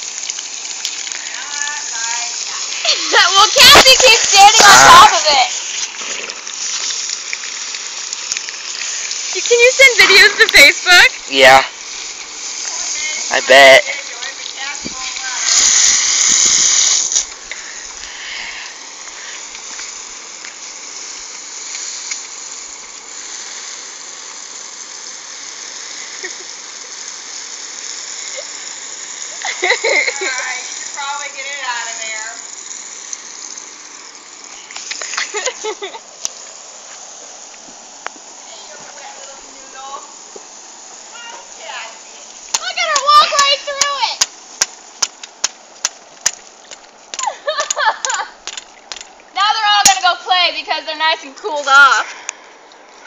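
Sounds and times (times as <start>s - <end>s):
garden hose spraying water: 0.0s - 53.0s.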